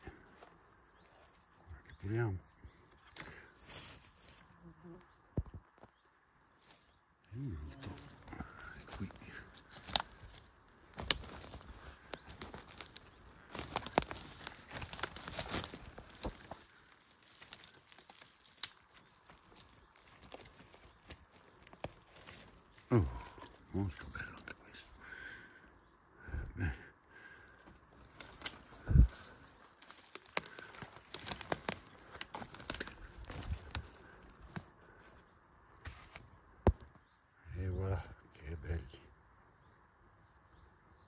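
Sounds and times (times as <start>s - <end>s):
dry leaves and twigs crackling: 0.0s - 37.2s.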